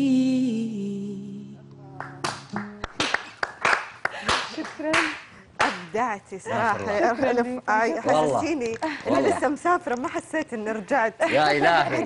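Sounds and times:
people clapping unevenly: 1.9 - 5.9.

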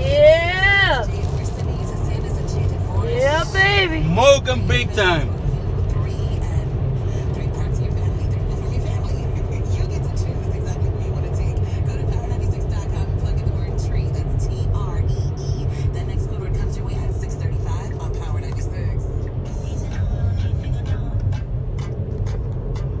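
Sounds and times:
road and engine rumble in car: 0.0 - 23.0.

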